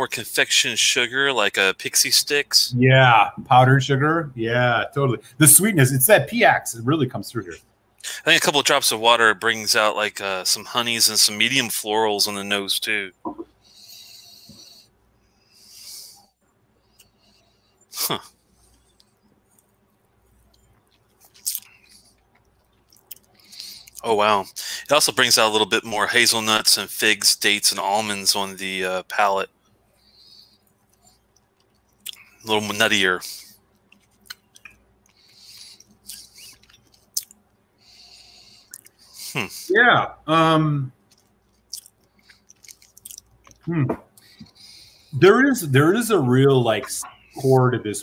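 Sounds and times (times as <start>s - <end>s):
soft hissy breaths: 4.9s - 48.0s
lip and tongue clicks: 33.8s - 37.4s, 38.7s - 39.0s, 41.1s - 44.3s.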